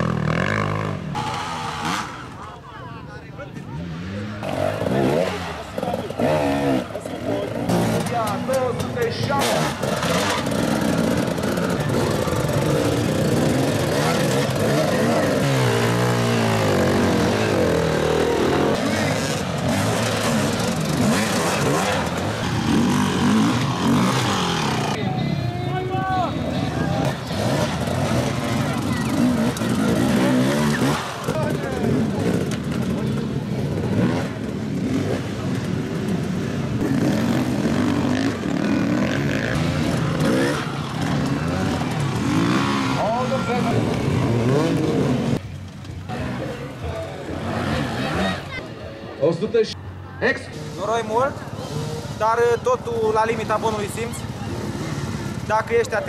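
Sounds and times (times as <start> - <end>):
dirt bike engines revving: 0.0 - 56.0
people's voices: 1.2 - 56.0.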